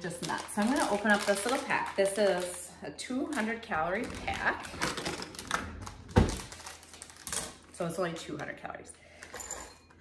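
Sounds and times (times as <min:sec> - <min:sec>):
scissors snipping plastic pack: 0:00.0 - 0:02.6.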